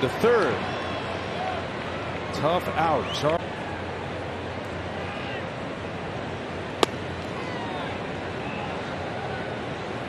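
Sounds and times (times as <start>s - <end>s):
ball popping into leather mitt: 6.8s - 7.0s.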